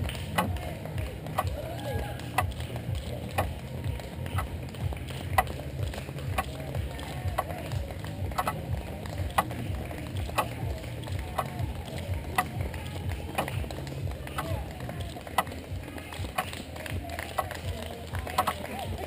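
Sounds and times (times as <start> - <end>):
person clapping: 0.0 - 19.0
runners' footsteps on asphalt: 0.0 - 19.0.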